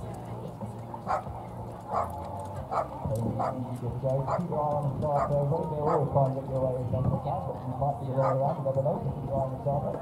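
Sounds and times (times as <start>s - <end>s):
dog barking: 1.1s - 1.3s, 1.9s - 2.1s, 2.7s - 3.6s, 5.2s - 6.0s, 8.2s - 8.4s.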